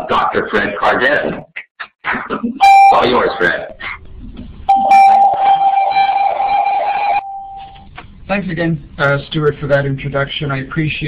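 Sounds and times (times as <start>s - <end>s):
loud steady electronic tone: 2.6s - 3.4s, 4.7s - 7.8s
faint higher tone: 7.1s - 7.8s.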